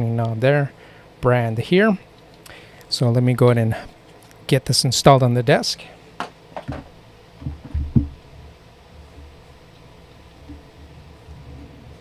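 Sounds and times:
microphone arm knocks and thumps: 6.6s - 8.3s, 10.4s - 12.0s.

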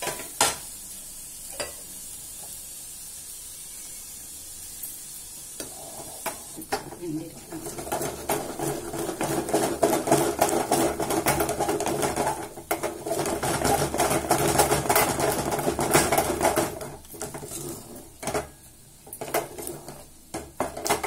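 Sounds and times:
wooden handle scraping steel pot: 7.4s - 18.4s.

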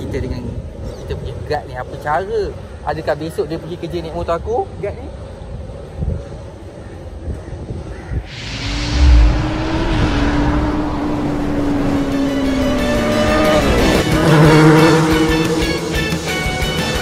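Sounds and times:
whoosh: 8.2s - 17.0s
motorcycle engine: 8.6s - 17.0s
music: 12.5s - 17.0s.

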